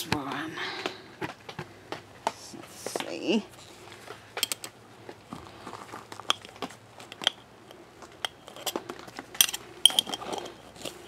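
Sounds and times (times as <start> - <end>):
metal spoon scraping glass jar: 9.4 - 10.7.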